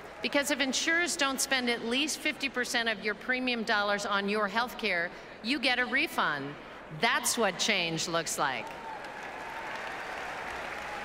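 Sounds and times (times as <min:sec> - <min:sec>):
large crowd applauding: 0:08.6 - 0:11.0.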